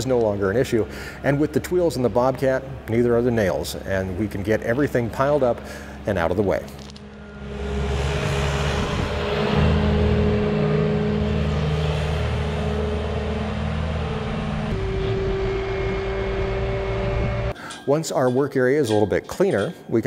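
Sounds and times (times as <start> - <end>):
skid-steer loader engine running: 3.9 - 17.5.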